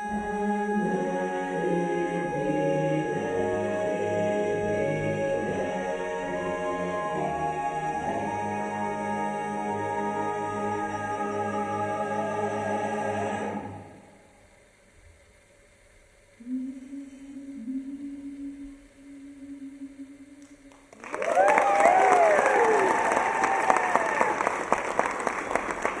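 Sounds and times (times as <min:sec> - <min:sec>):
low steady tone: 0:16.3 - 0:20.7
audience applause and cheering: 0:20.7 - 0:26.0.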